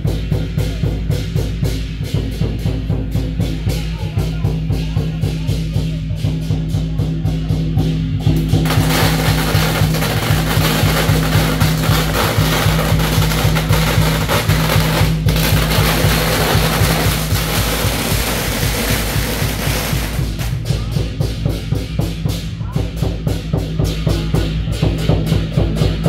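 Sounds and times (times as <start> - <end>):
regular drumbeat: 0.0 - 26.0
loud hissing noise: 8.6 - 20.6.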